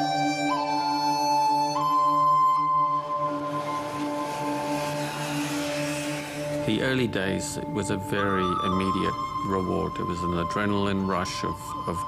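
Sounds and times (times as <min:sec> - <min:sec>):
background music: 0:00.0 - 0:12.0
motorcycle engine: 0:00.5 - 0:09.4.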